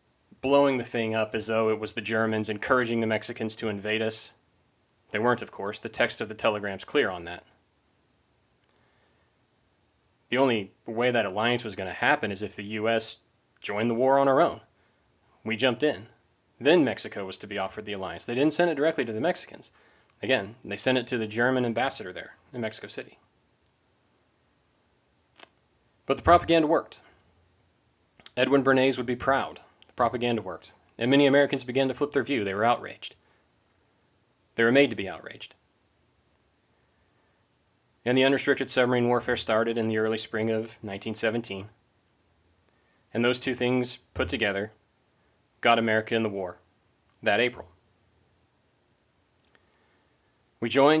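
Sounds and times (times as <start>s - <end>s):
faint click: 8.6s - 8.8s, 49.3s - 49.8s.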